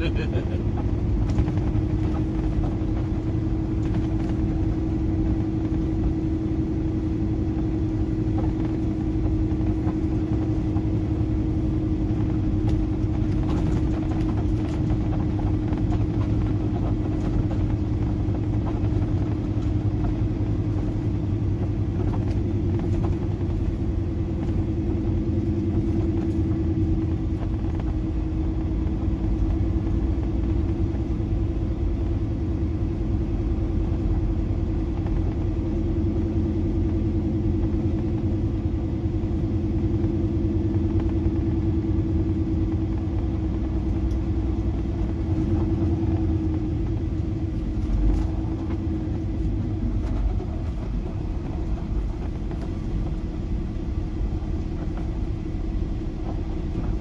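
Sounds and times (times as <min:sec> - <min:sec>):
road rumble: 0:00.0 - 0:57.0
truck diesel engine droning: 0:00.0 - 0:57.0.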